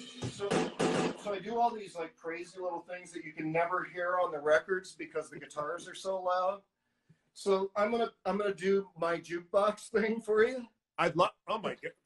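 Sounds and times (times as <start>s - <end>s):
drum machine hits: 0.0s - 1.4s
man's voice: 0.0s - 6.6s, 7.4s - 12.0s.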